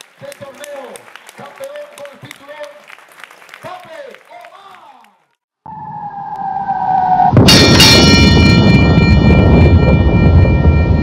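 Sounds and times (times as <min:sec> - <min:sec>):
falling tone: 0:05.7 - 0:11.0
metallic clang ringing: 0:07.4 - 0:09.4.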